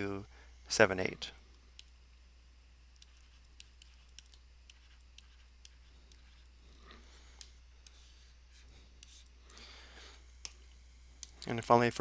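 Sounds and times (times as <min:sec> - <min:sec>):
low electrical hum: 0:00.0 - 0:12.0
stylus ticking on tablet screen: 0:02.9 - 0:06.4.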